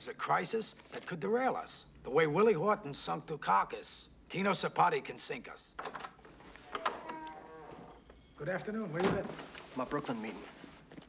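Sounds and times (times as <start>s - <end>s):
door hinges creaking: 5.8s - 9.5s.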